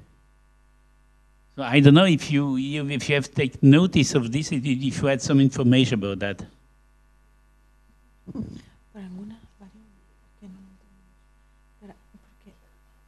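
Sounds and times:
electrical hum and buzz: 0:00.0 - 0:13.0.

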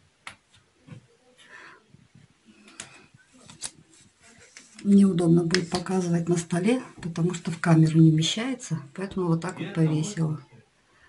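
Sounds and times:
soft fabric rustle: 0:00.4 - 0:07.7.

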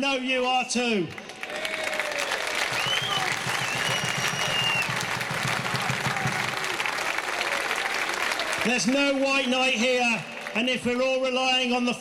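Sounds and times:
large crowd applauding: 0:01.0 - 0:12.0.

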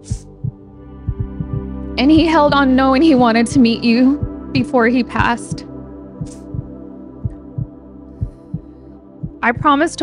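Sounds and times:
soft steady low beat: 0:00.0 - 0:10.0
sustained chords: 0:00.0 - 0:10.0.

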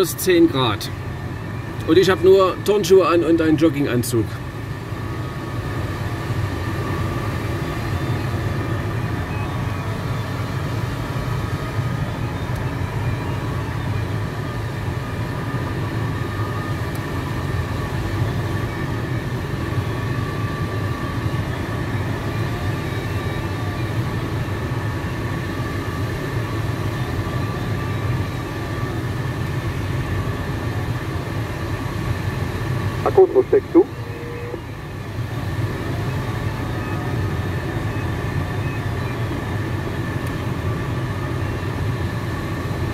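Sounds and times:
airflow rushing in cockpit: 0:00.0 - 0:42.9
faint steady high tones: 0:32.8 - 0:39.7.

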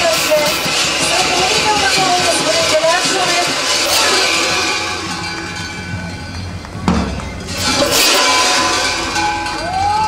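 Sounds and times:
large bells clanging: 0:00.0 - 0:10.0.

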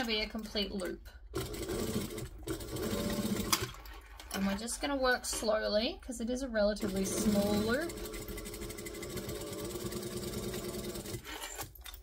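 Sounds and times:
sewing machine stitching: 0:01.4 - 0:04.4, 0:06.8 - 0:12.0.

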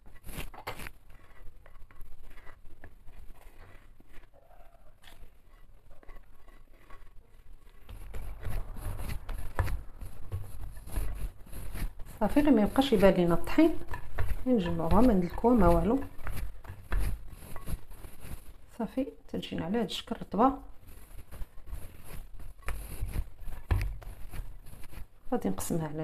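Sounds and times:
hands rubbing dough: 0:00.0 - 0:26.0
dough pressing thuds: 0:05.9 - 0:18.7, 0:20.8 - 0:25.4.

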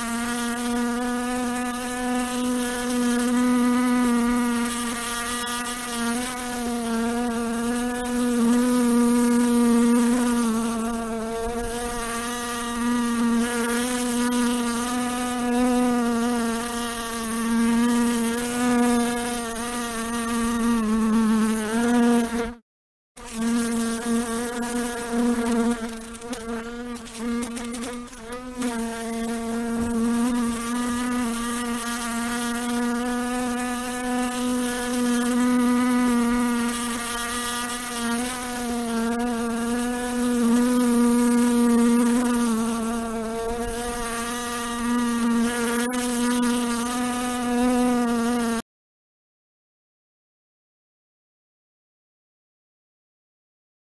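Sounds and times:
housefly buzzing: 0:00.0 - 0:22.6, 0:23.2 - 0:48.6.

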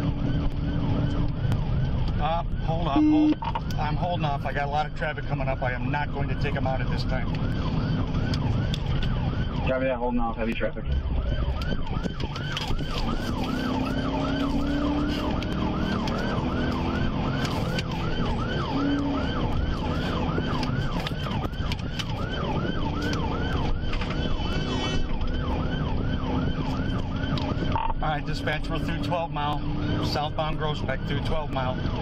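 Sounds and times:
engine and road noise: 0:00.0 - 0:32.0
police siren wailing: 0:00.0 - 0:32.0.

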